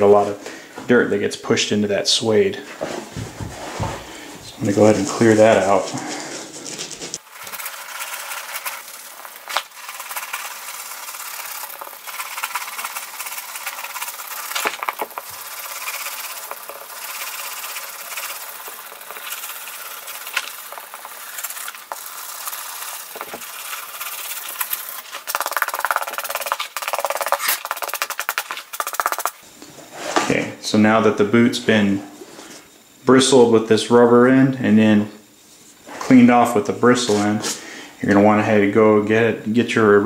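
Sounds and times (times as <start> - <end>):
brush scrubbing suede: 7.1 - 29.3.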